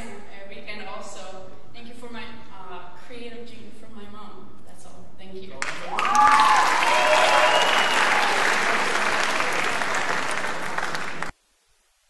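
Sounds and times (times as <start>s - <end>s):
audience applauding and cheering: 5.6s - 11.3s
shouted whoops: 5.8s - 10.4s.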